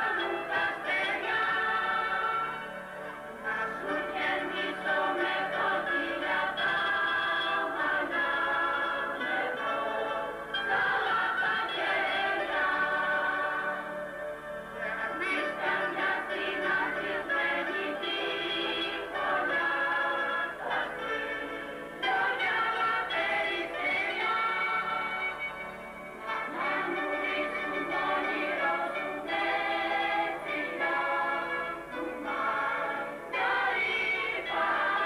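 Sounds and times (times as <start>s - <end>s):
mandolins and guitars: 0.0s - 35.0s
mixed choir singing: 0.0s - 35.0s.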